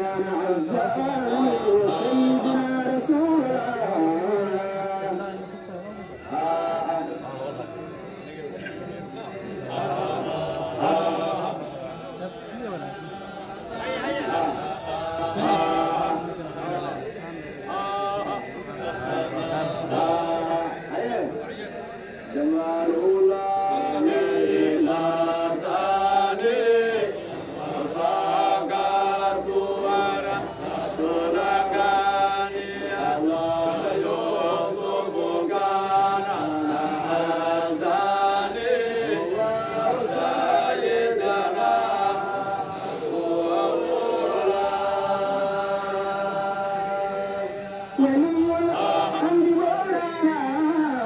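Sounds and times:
men chanting in unison: 0.0 - 51.0.

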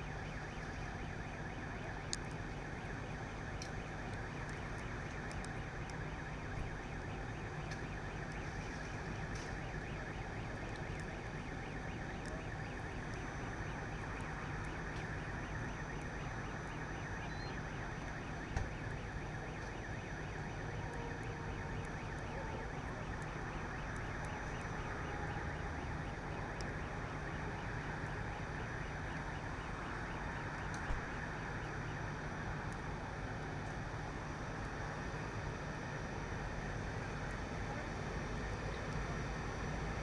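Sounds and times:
fire engines idling: 0.0 - 40.0
fire roaring: 0.0 - 40.0
sharp pops from fire: 0.1 - 34.8.

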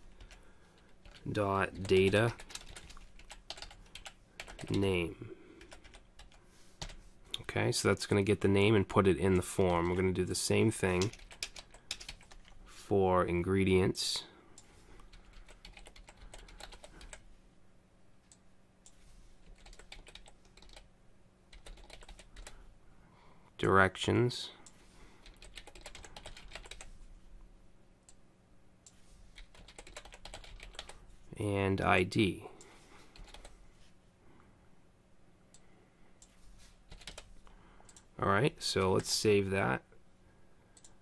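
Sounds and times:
faint keyboard typing: 0.0 - 7.5, 8.1 - 12.7, 14.5 - 17.3, 18.2 - 20.9, 21.5 - 22.7, 24.6 - 27.0, 28.8 - 31.2, 32.6 - 33.9, 35.5 - 38.2, 40.7 - 41.0.

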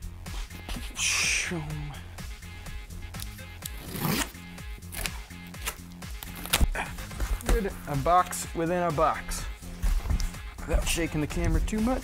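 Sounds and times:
background music with bass: 0.0 - 12.0
packing tape and cardboard ripping: 3.2 - 7.6.

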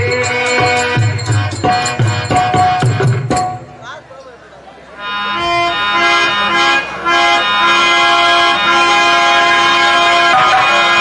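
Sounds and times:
harmonium playing: 0.0 - 11.0.

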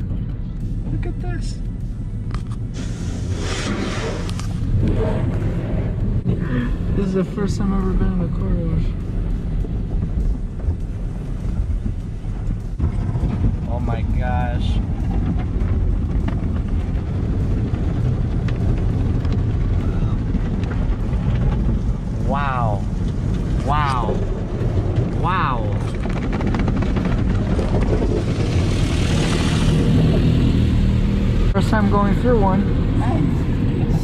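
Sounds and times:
car wash machinery rumble: 0.0 - 34.0
water on car body: 2.6 - 33.8
hiss of spray: 2.7 - 4.3.

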